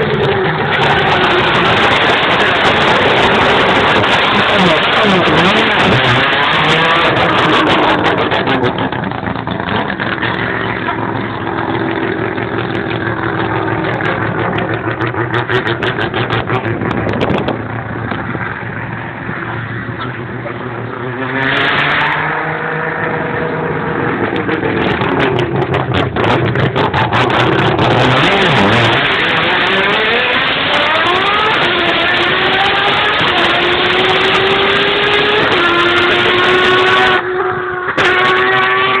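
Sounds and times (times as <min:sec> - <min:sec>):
race car accelerating: 0:00.0 - 0:39.0.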